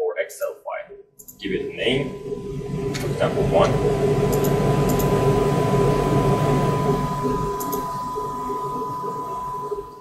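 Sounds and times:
steady background hum: 0.2 - 10.0
thin high whine: 1.3 - 10.0.

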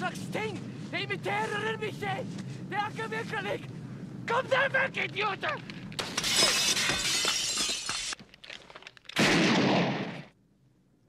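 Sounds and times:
window glass smashing: 6.0 - 8.2.

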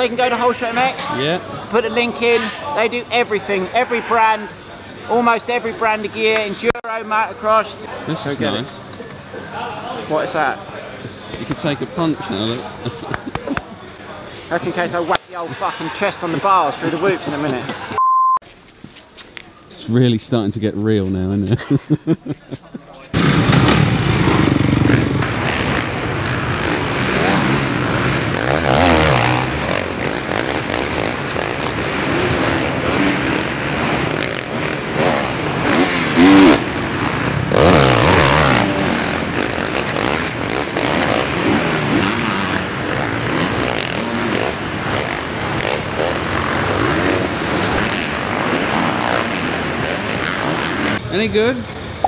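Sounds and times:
motocross bike engines revving: 23.2 - 52.0.

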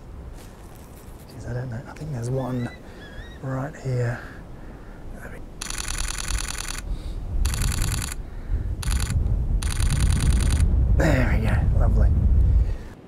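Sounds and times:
camera shutter clicks: 5.6 - 8.2, 8.8 - 10.7.

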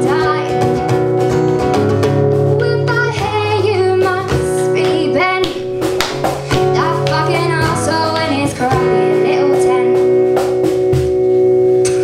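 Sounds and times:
woman singing: 0.0 - 0.8, 2.6 - 5.8, 6.4 - 10.2
strummed acoustic guitar: 0.0 - 12.0.

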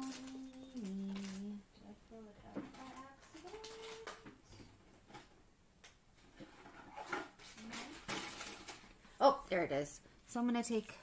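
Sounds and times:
woman humming softly: 0.0 - 4.6.

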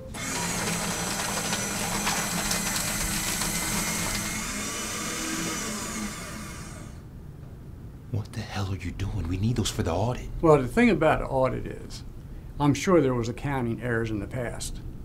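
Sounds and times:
paper shredder grinding: 0.0 - 7.0.

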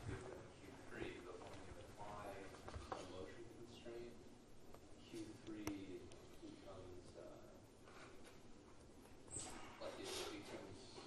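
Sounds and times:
faint distant speech: 9.3 - 11.0.

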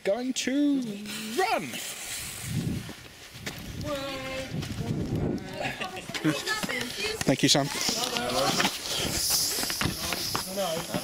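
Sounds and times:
hurried footsteps: 2.5 - 11.0.

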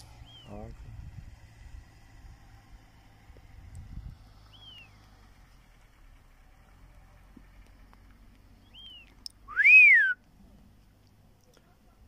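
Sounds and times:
whistled notes: 8.7 - 10.2.

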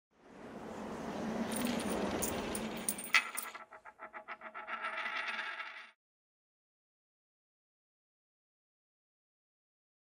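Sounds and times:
coins clinking: 1.5 - 5.9.

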